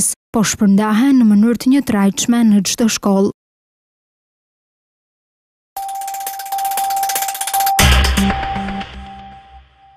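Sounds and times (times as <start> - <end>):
logo jingle with high held tone: 5.8 - 9.9.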